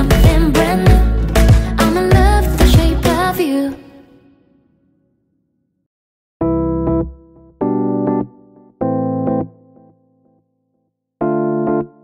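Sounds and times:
electric keyboard chords: 6.4s - 10.4s, 11.2s - 12.0s.

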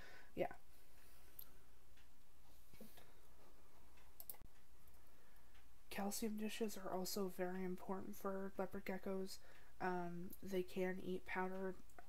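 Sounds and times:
faint hiss and hum: 0.0s - 12.0s
soft clicks: 3.8s - 7.2s.

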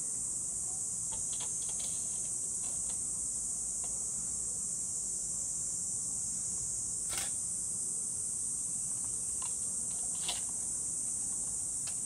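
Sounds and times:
insect chorus drone: 0.0s - 12.0s.

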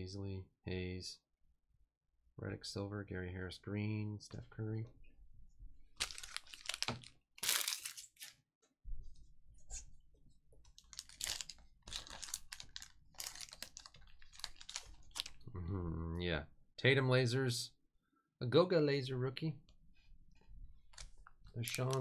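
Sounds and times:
plastic wrapper tearing and crinkling: 6.0s - 8.4s, 10.7s - 15.4s, 20.9s - 22.0s.

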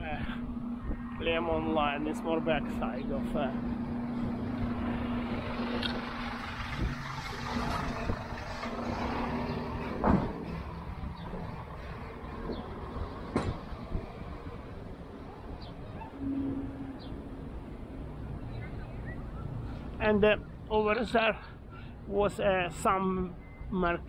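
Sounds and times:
truck engine and cooling unit hum: 0.0s - 24.0s.

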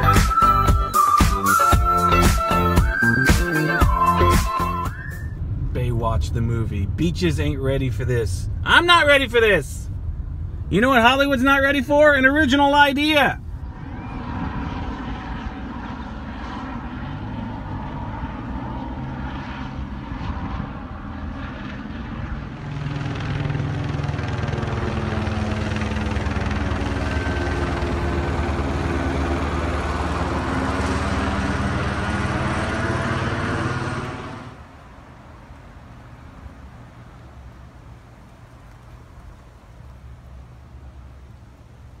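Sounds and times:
helicopter flying overhead: 9.7s - 38.7s.

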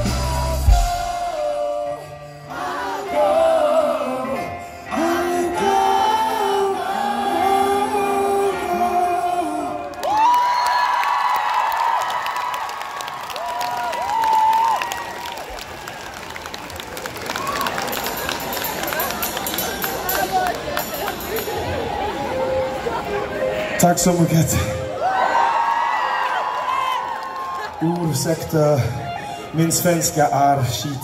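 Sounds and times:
live band music with singing: 0.0s - 10.0s
concert crowd cheering: 6.9s - 31.0s
crowd clapping: 9.8s - 22.2s, 25.5s - 28.8s.

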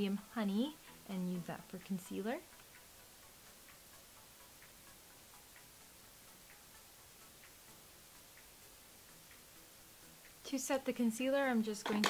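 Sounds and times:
soft ticking: 0.8s - 11.9s.

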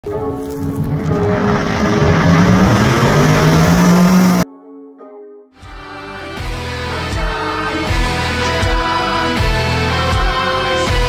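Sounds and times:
background music: 0.0s - 11.0s
car exhaust at full throttle: 0.6s - 4.4s.

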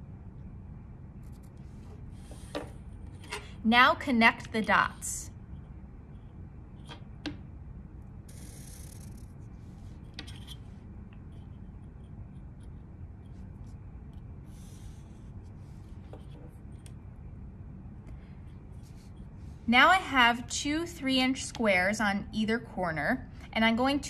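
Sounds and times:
low steady hum: 0.0s - 24.0s
marker scratching on cardstock: 8.3s - 9.3s, 14.5s - 15.5s.

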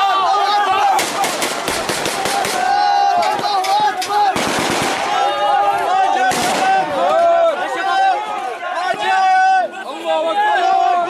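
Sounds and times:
men shouting: 0.0s - 11.0s
automatic gunfire: 1.0s - 2.7s, 4.4s - 5.2s.

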